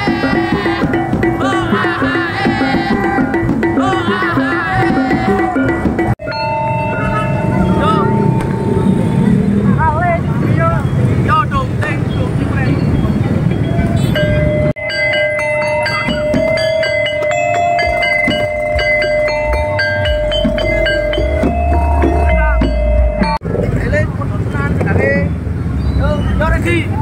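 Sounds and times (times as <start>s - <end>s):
amplified electronic music: 0.0s - 9.2s, 15.8s - 23.4s
crowd voices: 0.0s - 27.0s
motorbike engines running: 0.0s - 27.0s.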